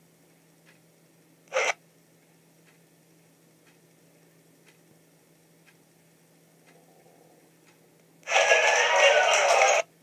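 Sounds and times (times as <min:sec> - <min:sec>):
faint ticks: 0:00.2 - 0:00.9, 0:02.2 - 0:02.9, 0:03.6 - 0:04.0, 0:04.6 - 0:04.9, 0:05.6 - 0:05.8, 0:06.6 - 0:08.2.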